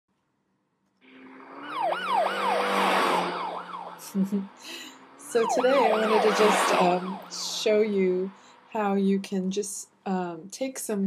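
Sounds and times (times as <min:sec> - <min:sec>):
police siren yelp: 0:01.4 - 0:04.2, 0:05.2 - 0:07.9.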